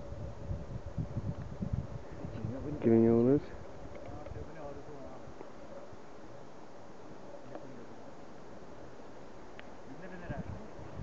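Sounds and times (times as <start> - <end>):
wind rumble on microphone: 0.0 - 6.0, 10.1 - 11.0.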